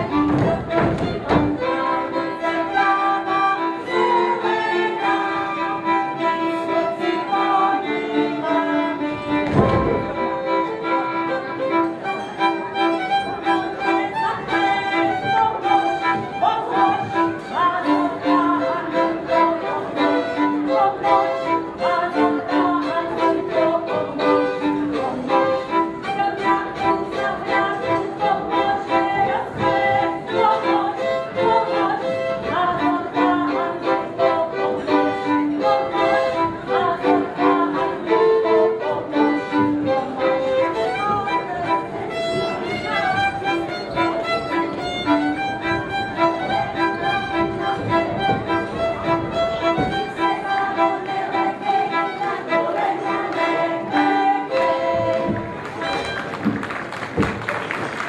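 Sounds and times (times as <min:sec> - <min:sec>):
fiddle folk dance tune: 0:00.0 - 0:58.0
rhythmic accompaniment: 0:00.0 - 0:58.0.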